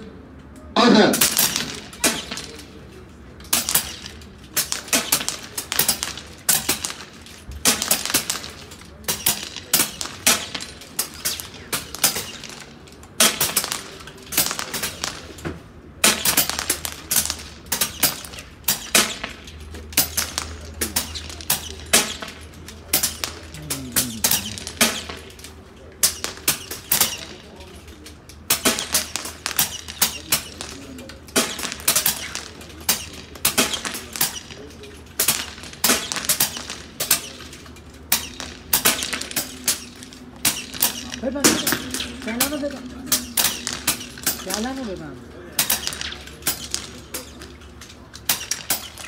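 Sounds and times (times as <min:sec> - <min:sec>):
air rifles firing: 0:03.5 - 0:15.4, 0:16.0 - 0:25.4, 0:26.0 - 0:27.5, 0:28.4 - 0:34.6, 0:35.2 - 0:47.5, 0:48.2 - 0:49.0
steel targets pinging: 0:16.0 - 0:25.3, 0:28.4 - 0:45.0, 0:45.6 - 0:47.5.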